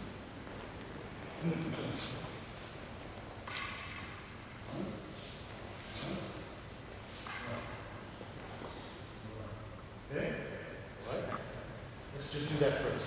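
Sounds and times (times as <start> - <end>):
bare feet sliding on mat: 4.7 - 7.3.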